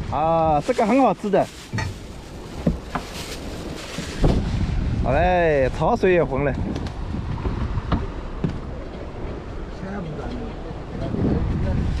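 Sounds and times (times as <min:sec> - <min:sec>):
steady low rumble: 0:01.7 - 0:12.0.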